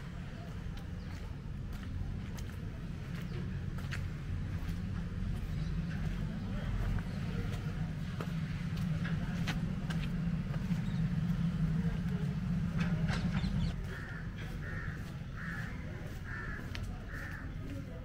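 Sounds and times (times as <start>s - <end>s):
low steady hum: 0.0s - 14.2s
crow cawing: 13.7s - 17.8s.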